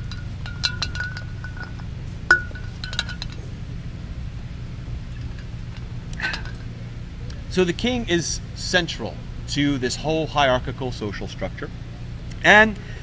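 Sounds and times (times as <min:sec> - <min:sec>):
wind chimes tinkling: 0:00.0 - 0:03.5
steady low rumble: 0:00.0 - 0:13.0.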